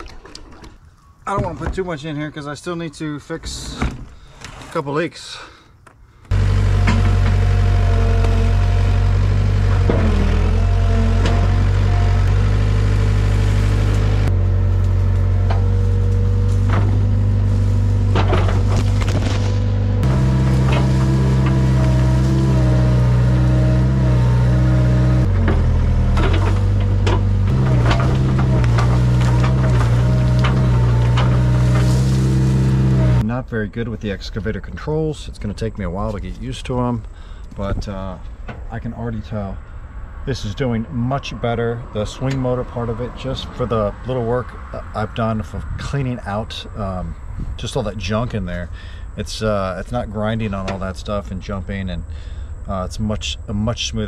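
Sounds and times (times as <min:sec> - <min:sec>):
excavator engine and hydraulics: 0:06.2 - 0:33.6, 0:37.0 - 0:54.0
branches cracking and snapping: 0:11.6 - 0:23.9, 0:26.2 - 0:33.2.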